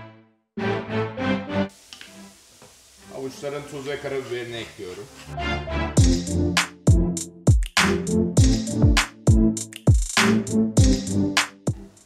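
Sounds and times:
background music: 0.0 - 2.4, 5.3 - 12.0.

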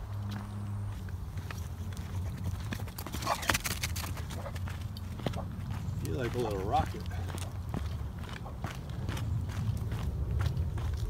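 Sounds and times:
running footsteps on dirt: 0.0 - 11.0
low rumble: 7.8 - 11.0.

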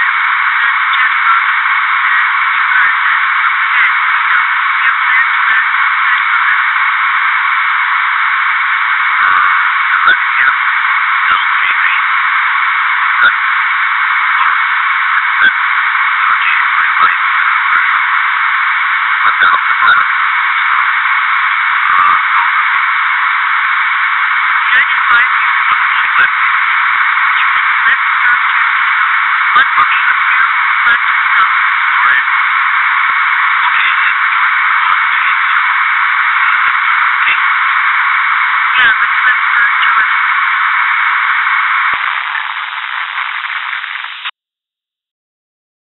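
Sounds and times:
radio static hiss: 0.0 - 44.3.

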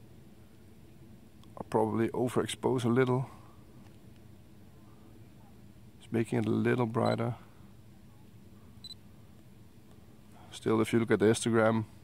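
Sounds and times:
faint background hiss: 0.0 - 12.0
high electronic camera beep: 8.8 - 9.0.

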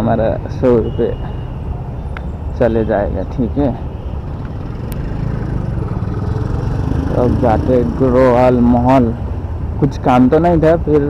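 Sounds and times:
vehicle engine at low revs: 4.2 - 9.9.

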